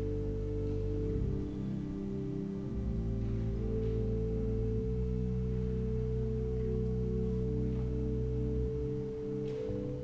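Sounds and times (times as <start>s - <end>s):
pipe organ sustained chords: 0.0s - 10.0s.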